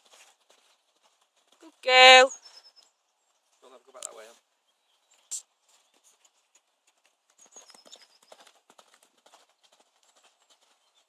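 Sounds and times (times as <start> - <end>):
horse hoofbeats cantering: 0.0 - 1.8, 5.6 - 11.0.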